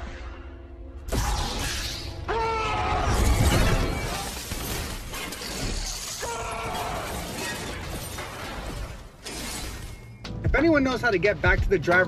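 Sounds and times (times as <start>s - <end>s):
smashing and crackling crashes: 2.9s - 10.1s.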